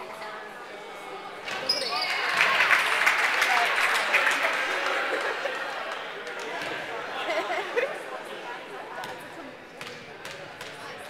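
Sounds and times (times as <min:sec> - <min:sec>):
crowd cheering and clapping: 0:02.0 - 0:06.6.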